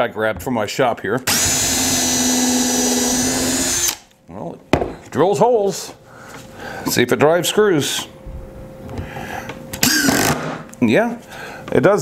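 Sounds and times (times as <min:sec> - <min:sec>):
impact driver driving screw into wood: 0:01.3 - 0:04.0, 0:09.8 - 0:10.6.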